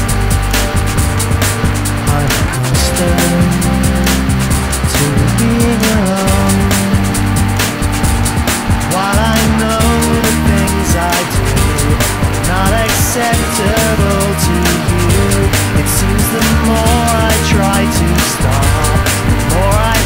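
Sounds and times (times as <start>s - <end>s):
drum kit steady beat: 0.0s - 20.0s
lead guitar bending notes: 0.0s - 20.0s
sustained bass: 0.0s - 20.0s.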